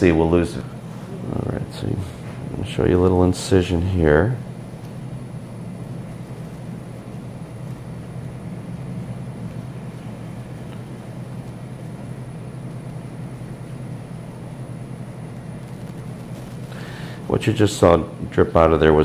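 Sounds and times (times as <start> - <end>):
faint high whine: 0.0 - 19.0
low mechanical hum: 0.0 - 19.0.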